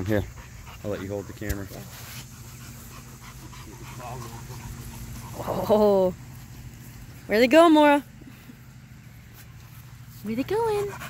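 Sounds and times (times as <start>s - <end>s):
dogs panting: 0.0s - 11.0s.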